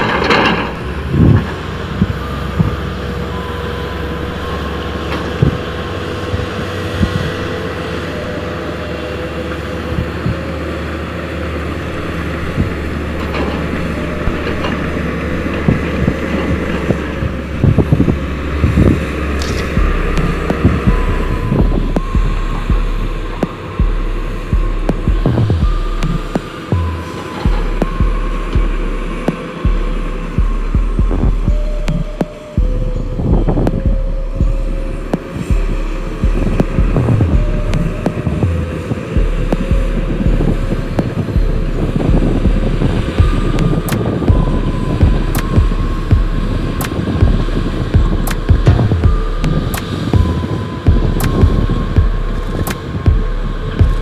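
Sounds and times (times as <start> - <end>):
knocks and clanks: 0.0 - 2.9, 12.3 - 54.0
diesel engines of machinery running: 0.0 - 54.0
low uneven throbbing: 0.0 - 54.0.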